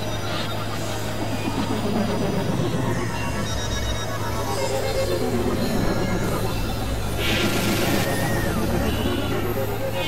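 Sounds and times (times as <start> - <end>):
experimental electronic drone music: 0.0 - 10.0.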